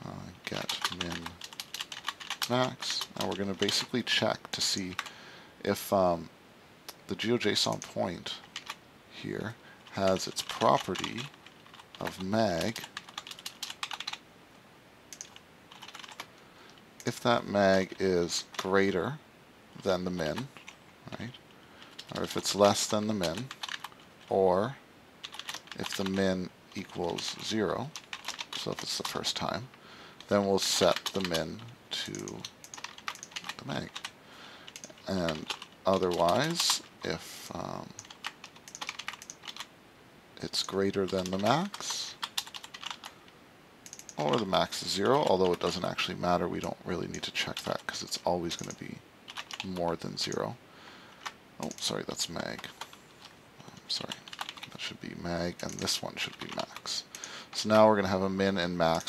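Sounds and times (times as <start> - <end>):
computer keyboard typing: 0.6 - 3.9, 7.7 - 8.8, 10.0 - 14.2, 15.1 - 16.3, 21.9 - 24.0, 25.2 - 26.2, 27.1 - 29.2, 30.2 - 34.1, 34.7 - 36.9, 37.9 - 39.7, 40.6 - 43.1, 43.8 - 45.7, 48.6 - 50.5, 54.0 - 54.8, 55.6 - 57.3.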